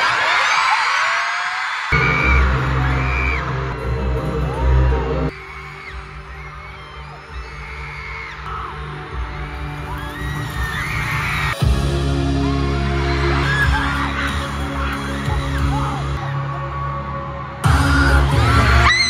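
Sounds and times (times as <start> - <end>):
fans screaming: 0.0 - 19.0
bass-heavy music over sound system: 2.0 - 19.0.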